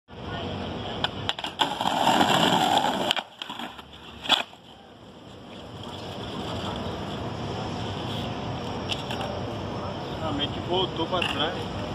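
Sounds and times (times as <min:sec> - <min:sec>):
skateboard clacks: 0:01.0 - 0:04.6
skateboard wheels rolling on stone: 0:01.0 - 0:07.3.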